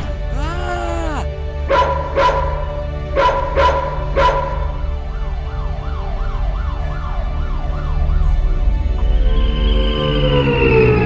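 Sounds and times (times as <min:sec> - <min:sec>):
low music: 0:00.0 - 0:11.0
dog barking: 0:01.1 - 0:04.8
police siren wailing: 0:01.8 - 0:11.0.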